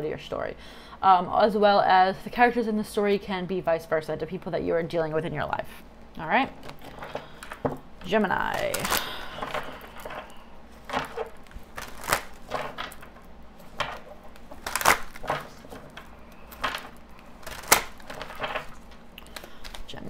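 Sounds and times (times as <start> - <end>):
cards being shuffled: 8.4 - 20.0.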